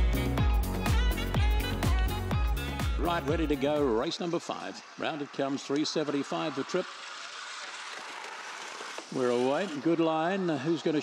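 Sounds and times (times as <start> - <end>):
mechanical lure rushing along rail: 3.6 - 11.0.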